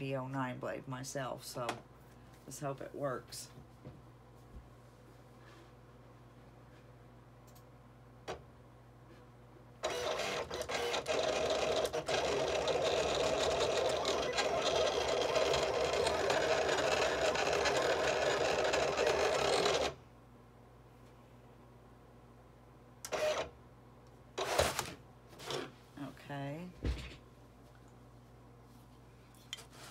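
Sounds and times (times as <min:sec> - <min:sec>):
cutter carriage and rollers whirring: 0:09.8 - 0:20.0
short machine sounds: 0:09.8 - 0:20.0, 0:23.0 - 0:23.5.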